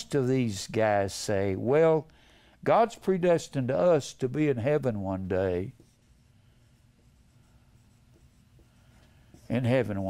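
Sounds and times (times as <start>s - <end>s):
low room hum: 0.0s - 10.0s
marker writing on whiteboard: 5.4s - 10.0s.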